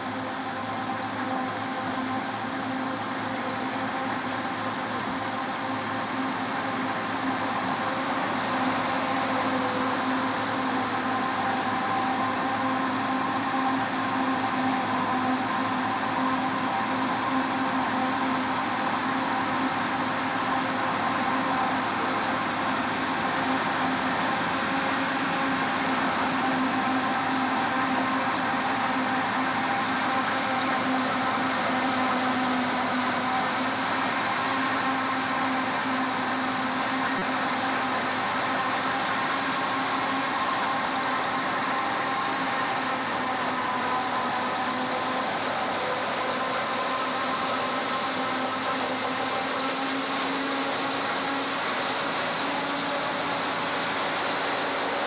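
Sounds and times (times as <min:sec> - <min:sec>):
forage harvester drone and whine: 0:00.0 - 0:55.0
tractor running: 0:00.0 - 0:55.0.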